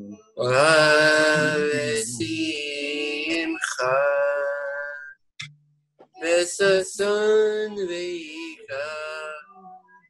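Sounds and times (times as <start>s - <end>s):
man singing unaccompanied: 0.1s - 5.2s, 6.2s - 9.8s.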